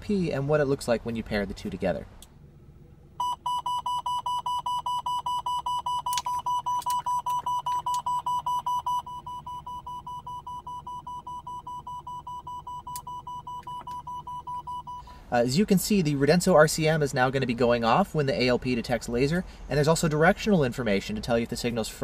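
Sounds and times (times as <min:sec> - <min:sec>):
radar detector high beeps: 0:03.2 - 0:15.1.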